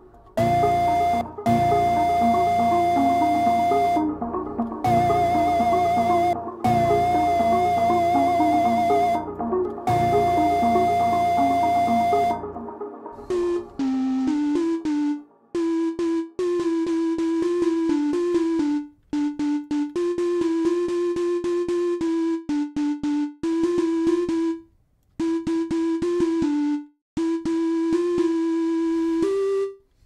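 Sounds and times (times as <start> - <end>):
single synth notes: 0.0 - 20.0
synth passage with bass: 0.4 - 15.6.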